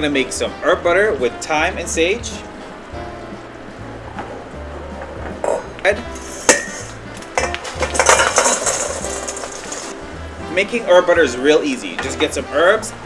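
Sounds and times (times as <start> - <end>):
butter sizzling: 2.3 - 10.2
utensil clinking against pan: 6.2 - 9.9.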